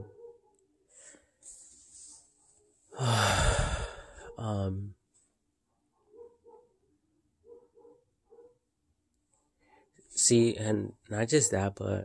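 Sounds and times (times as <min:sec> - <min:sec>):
faint dog barking: 0:00.0 - 0:01.3, 0:05.6 - 0:10.4.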